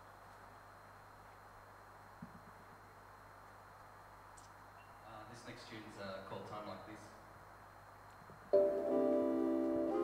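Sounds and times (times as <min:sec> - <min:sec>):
keyboard chord: 0:08.5 - 0:10.0.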